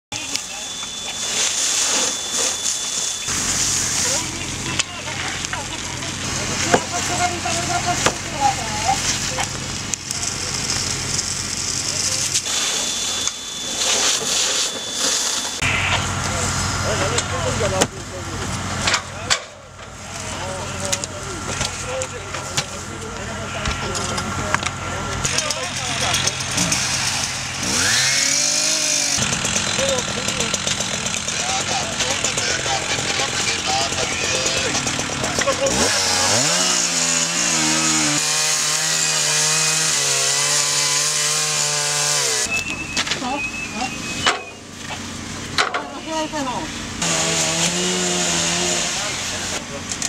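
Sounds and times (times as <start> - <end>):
chainsaw cutting wood: 25.2 - 42.6, 46.9 - 50.0.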